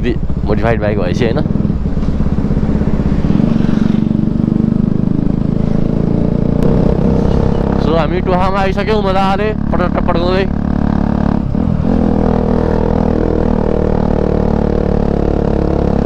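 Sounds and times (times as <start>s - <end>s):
person speaking: 0.0s - 1.5s, 7.7s - 10.5s
motorcycle engine running: 0.0s - 16.0s.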